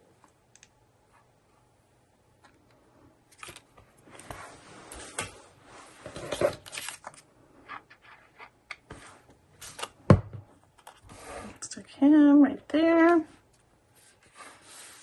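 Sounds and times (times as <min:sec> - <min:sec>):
paper rustling: 0:03.3 - 0:07.2.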